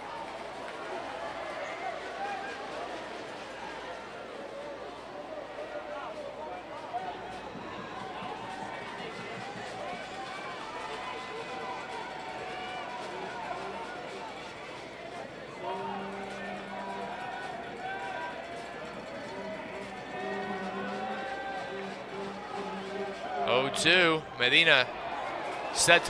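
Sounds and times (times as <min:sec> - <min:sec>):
crowd chatter: 0:00.0 - 0:26.0.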